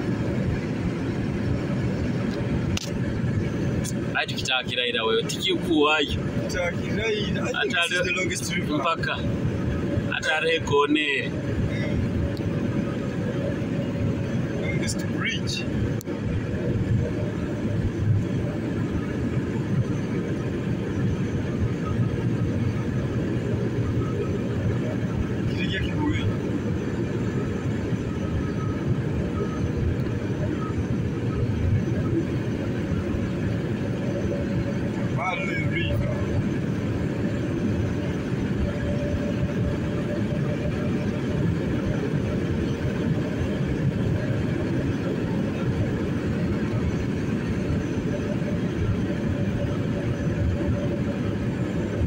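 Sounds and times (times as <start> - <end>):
car interior road rumble: 0.0 - 52.0.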